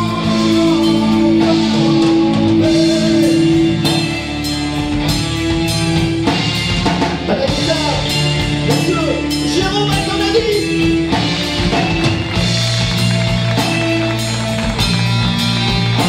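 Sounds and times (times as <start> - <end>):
drum kit: 0.0 - 16.0
electric guitar: 0.0 - 16.0.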